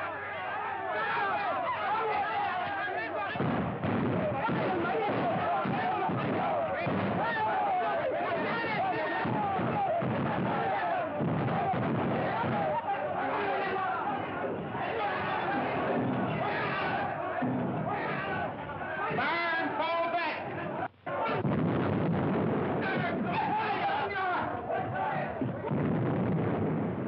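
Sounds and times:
men shouting and yelling: 0.0 - 25.7.

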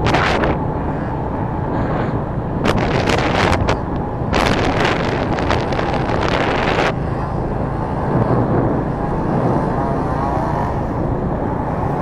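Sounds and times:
motorbike engine and road rumble: 0.0 - 12.0
wind buffeting microphone: 0.0 - 12.0.

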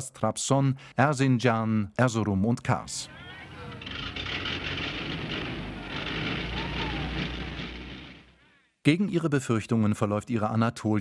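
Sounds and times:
vehicle engine rumbling: 2.8 - 8.4.

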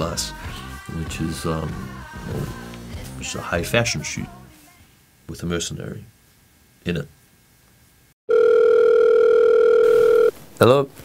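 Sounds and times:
telephone ringing tone: 8.3 - 10.4.

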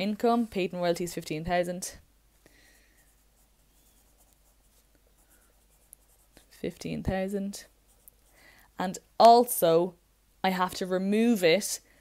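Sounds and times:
pencil scratching on paper: 2.7 - 8.4.

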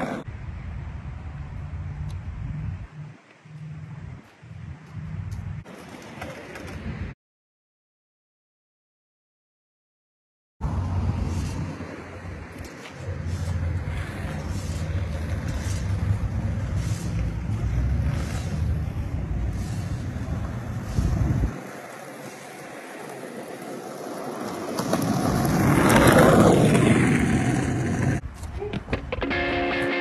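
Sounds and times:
low vehicle rumble: 10.6 - 23.3
whoosh of vehicle passing: 10.6 - 28.2
guitar music: 29.2 - 30.0.

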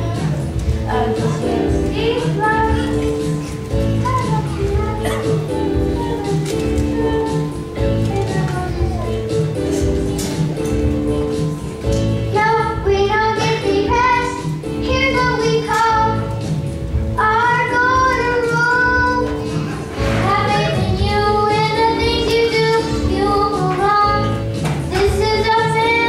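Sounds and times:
children singing: 0.0 - 11.6, 17.2 - 26.0
musical accompaniment: 0.0 - 26.0.

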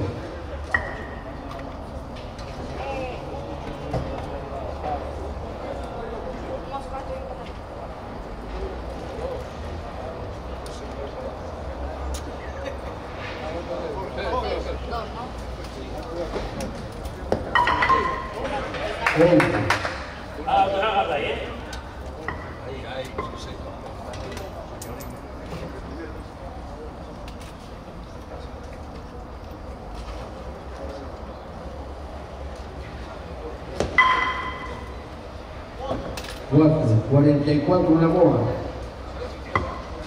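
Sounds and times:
murmur of voices: 0.0 - 40.0
sharp knocks and clinks: 17.5 - 18.6, 33.9 - 35.0.

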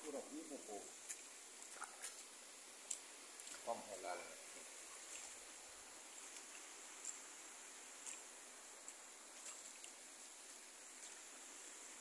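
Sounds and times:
water running over spillway: 0.0 - 12.0.

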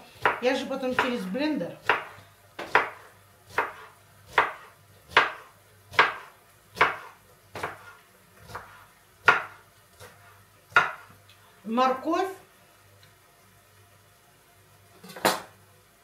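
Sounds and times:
knife chopping on wooden board: 0.2 - 1.2, 1.8 - 11.1.

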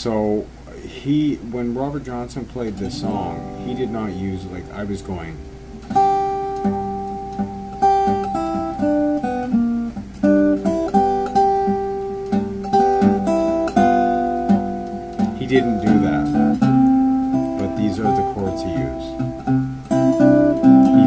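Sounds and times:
fingerpicked blues guitar: 0.3 - 21.0.

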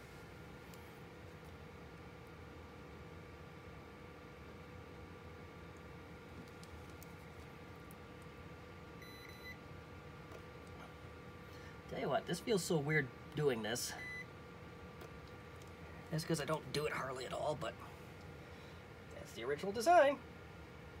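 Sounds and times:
faint electrical hum and whine: 0.0 - 21.0.

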